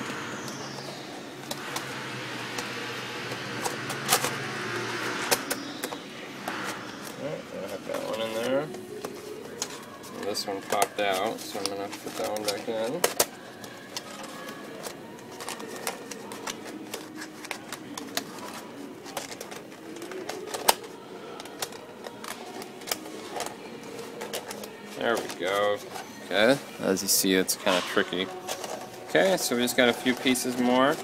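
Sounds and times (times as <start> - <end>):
plastic pieces rustling and clicking: 0.3 - 31.0.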